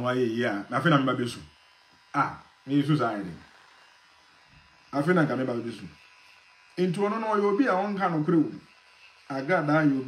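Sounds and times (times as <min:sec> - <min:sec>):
man talking: 0:00.0 - 0:01.5, 0:02.2 - 0:03.4, 0:04.9 - 0:06.0, 0:06.8 - 0:08.6, 0:09.3 - 0:10.0
electric beard trimmer buzzing: 0:00.0 - 0:10.0.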